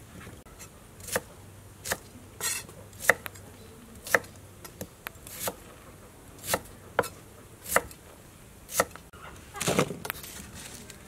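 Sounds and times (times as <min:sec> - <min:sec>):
knife slicing shallots: 0:00.6 - 0:03.4, 0:04.0 - 0:05.6, 0:06.4 - 0:08.0, 0:08.7 - 0:09.0.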